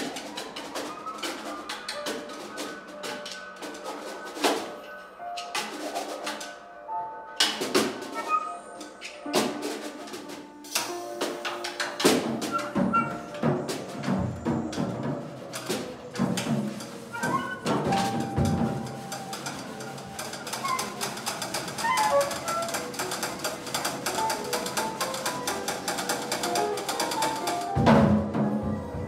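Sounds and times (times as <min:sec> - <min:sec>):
clicks and taps on drums: 0:00.0 - 0:06.6, 0:07.4 - 0:29.0
grand piano: 0:00.0 - 0:29.0.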